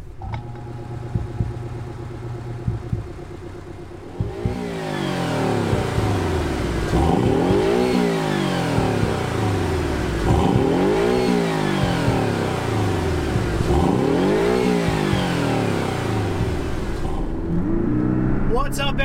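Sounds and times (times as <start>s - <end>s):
car engine revving: 0.0s - 19.0s.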